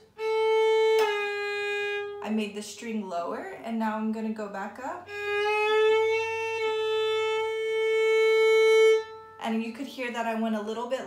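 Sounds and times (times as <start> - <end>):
violin string bowed long note: 0.0 - 9.8.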